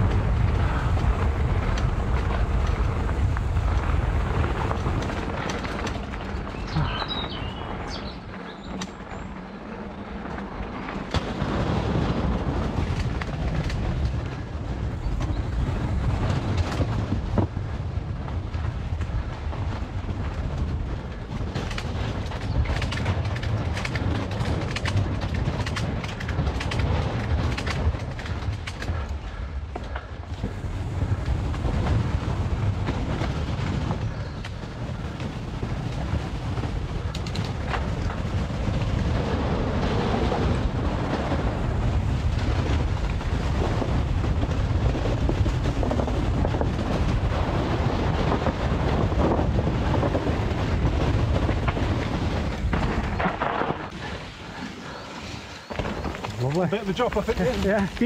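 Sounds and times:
bike rattles and knocks: 0.0s - 58.0s
bike tyres rumbling on dirt: 0.0s - 58.0s.

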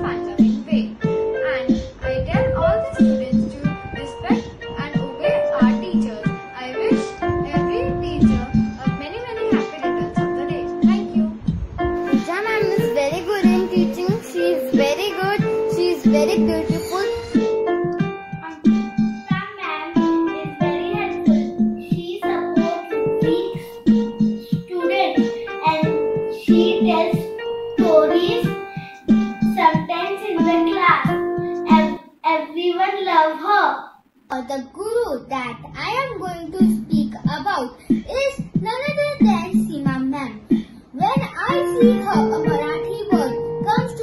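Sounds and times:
girl singing: 0.0s - 17.3s, 18.1s - 34.0s, 35.4s - 44.0s
instrumental accompaniment held notes: 0.0s - 32.2s, 41.0s - 44.0s.

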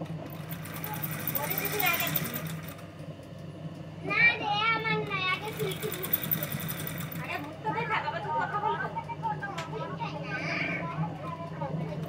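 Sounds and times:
sewing machine running: 0.0s - 3.0s, 5.2s - 7.8s
people talking: 0.8s - 2.4s, 4.1s - 12.0s.

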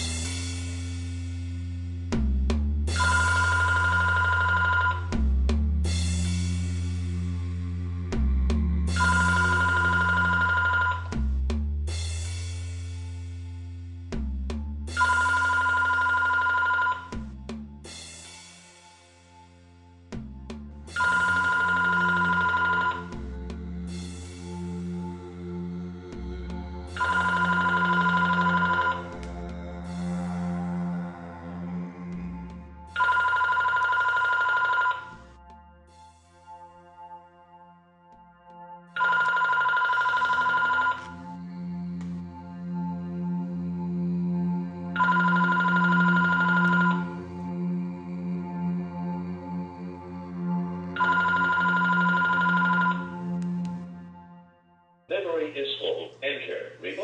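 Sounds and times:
telephone ringing: 3.0s - 5.2s, 9.0s - 11.1s, 15.0s - 17.2s, 21.0s - 23.2s, 27.0s - 29.0s, 33.0s - 35.1s, 39.0s - 41.2s, 45.0s - 47.1s, 51.0s - 53.2s
low background drone: 5.0s - 15.4s, 18.8s - 33.5s, 40.6s - 56.2s.

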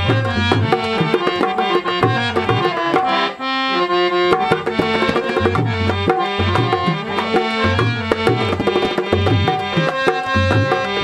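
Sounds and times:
fast hand drumming: 0.0s - 3.2s, 4.2s - 11.0s
harmonium melody: 0.0s - 11.0s.

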